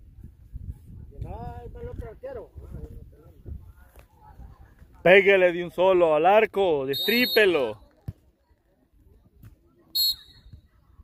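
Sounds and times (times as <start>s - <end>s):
referee whistle blast: 6.9s - 7.8s, 10.0s - 10.6s.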